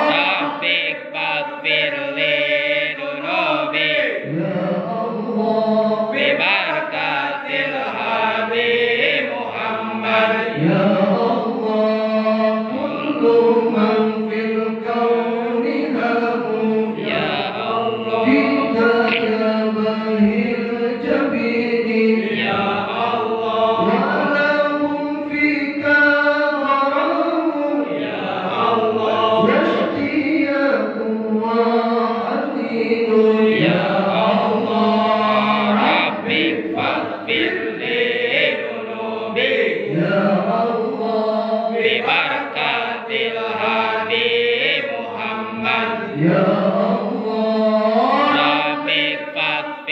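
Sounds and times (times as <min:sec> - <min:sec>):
lead voice on microphone: 0:00.0 - 0:49.9
men chanting devotional verses: 0:00.0 - 0:49.9.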